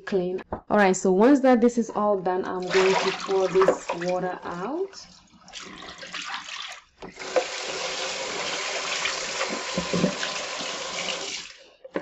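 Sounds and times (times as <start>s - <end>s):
faucet running into sink: 2.6s - 4.2s, 5.1s - 11.6s
water poured into sink: 2.6s - 4.2s, 5.0s - 11.6s.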